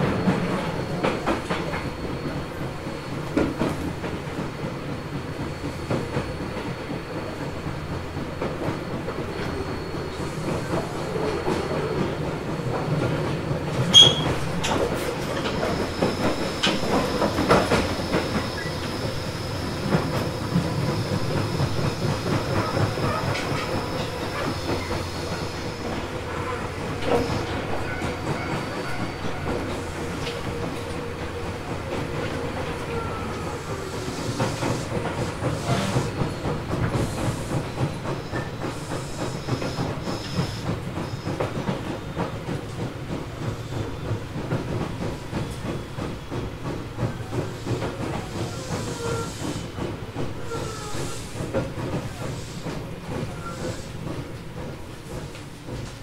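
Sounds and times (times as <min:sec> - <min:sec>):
train rumble: 0:00.0 - 0:56.0.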